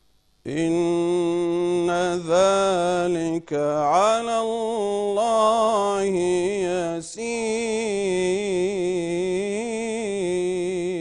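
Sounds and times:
man chanting melodically: 0.5 - 11.0.

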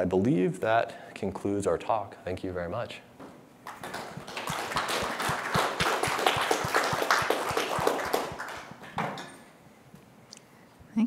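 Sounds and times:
audience applauding: 3.6 - 9.2.

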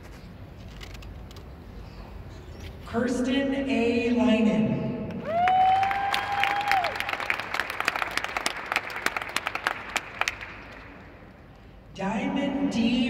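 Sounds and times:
long whooping cheer: 5.2 - 7.4
audience applauding: 5.2 - 11.0.

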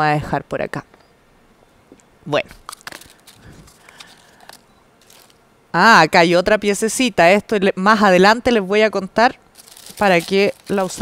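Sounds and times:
wrapping rustling: 2.6 - 5.4, 9.5 - 11.0.

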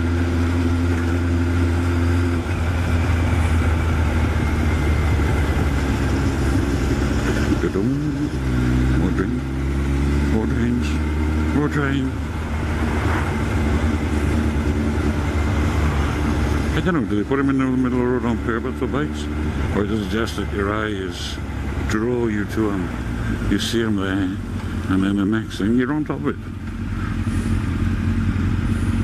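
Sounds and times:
motorcycle engine running: 0.0 - 29.0.

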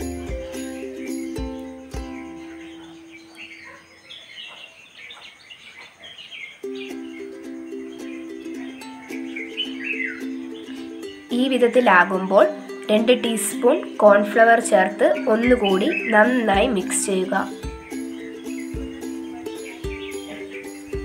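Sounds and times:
plucked-string tune: 0.0 - 2.9, 6.6 - 21.0
bird-like chirps: 0.0 - 21.0.

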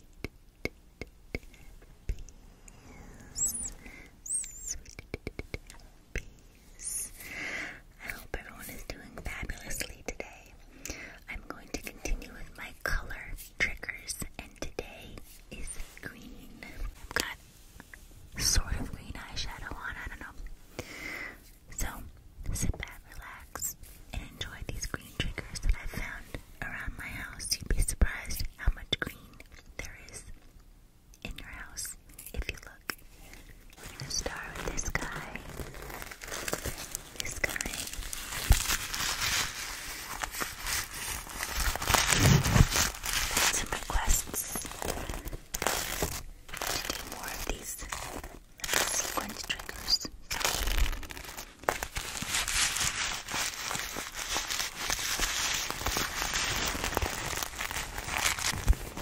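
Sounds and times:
person whispering: 3.1 - 7.2, 8.0 - 10.6, 11.2 - 17.4, 18.4 - 20.5, 21.7 - 30.3, 31.2 - 35.7, 37.2 - 38.1, 42.3 - 45.2, 46.5 - 50.6
mouth clicks: 3.3 - 5.8.

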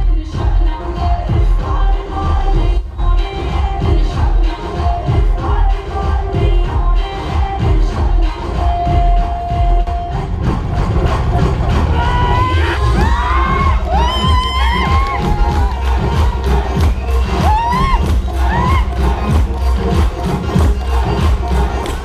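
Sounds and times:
loud music with heavy beat: 0.0 - 22.0
crowd cheering: 11.7 - 22.0
shouts and whoops: 11.9 - 19.4.

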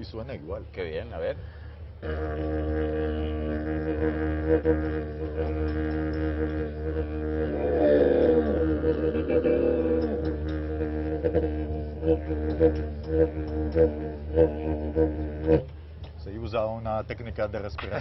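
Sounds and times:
didgeridoo drone: 2.0 - 15.9.

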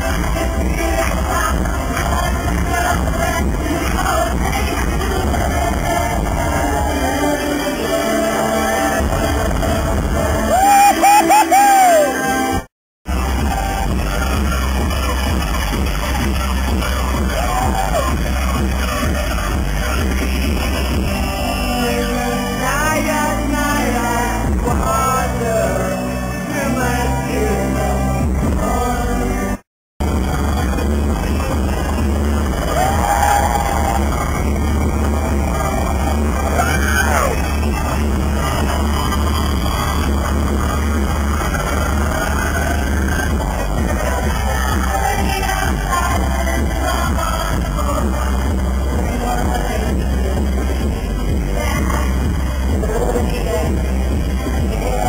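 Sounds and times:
heavy steady bass: 0.0 - 12.0, 13.0 - 55.0
live pop concert music: 0.0 - 55.0
audience cries: 10.2 - 12.6, 30.0 - 44.7.

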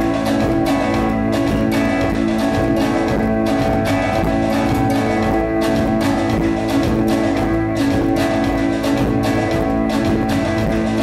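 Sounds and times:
acoustic guitar strumming: 0.0 - 11.0
live band music: 0.0 - 11.0.

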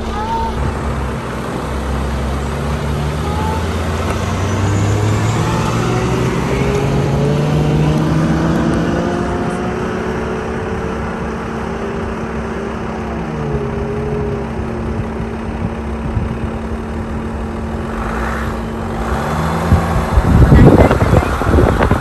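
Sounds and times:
tyres on gravel road: 0.0 - 22.0
vehicle engine shifting up gears: 0.0 - 22.0.

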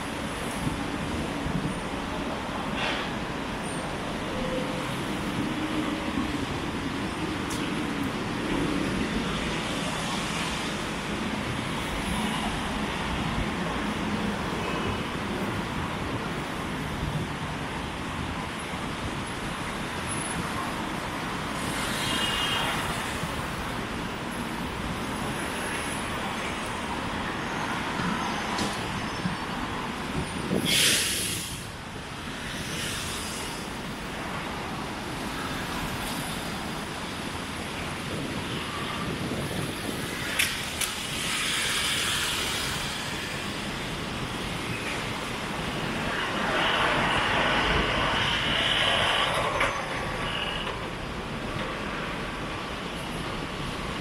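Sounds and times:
city road traffic: 0.0 - 54.0
loud hiss: 30.6 - 31.8, 40.2 - 49.6.

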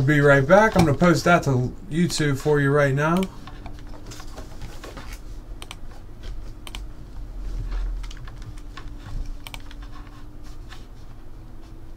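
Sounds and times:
steady low hum: 0.0 - 11.9
typing on a computer keyboard: 9.4 - 9.9.

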